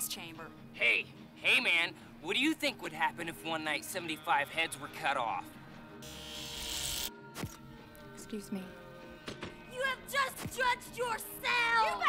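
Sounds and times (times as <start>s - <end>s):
electric hair clippers buzzing: 6.0s - 7.2s.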